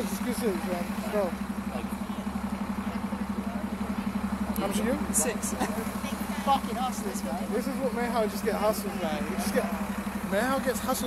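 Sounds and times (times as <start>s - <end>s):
vehicle engine idling: 0.0s - 11.0s.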